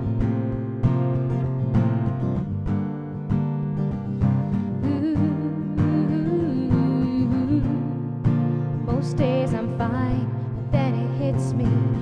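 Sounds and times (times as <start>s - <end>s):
acoustic guitar strumming: 0.0s - 12.0s
woman singing: 4.6s - 12.0s.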